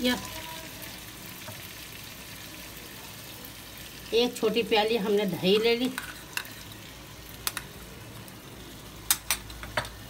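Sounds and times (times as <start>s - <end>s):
food sizzling in oil: 0.0s - 10.0s.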